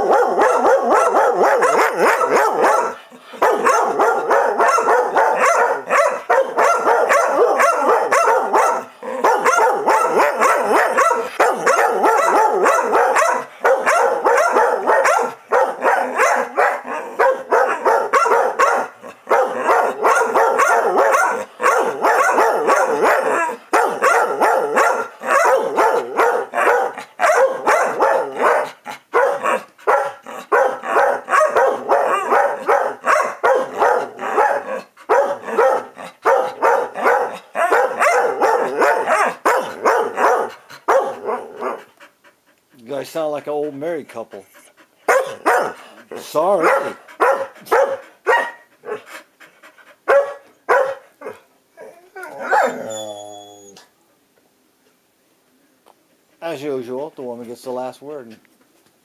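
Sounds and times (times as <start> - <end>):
dogs barking: 0.0 - 41.9, 45.0 - 49.1, 50.0 - 51.4, 52.2 - 52.9.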